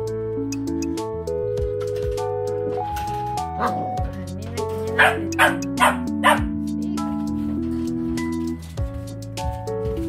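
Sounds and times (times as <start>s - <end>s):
background music: 0.0s - 10.0s
puppy yapping: 5.0s - 6.5s.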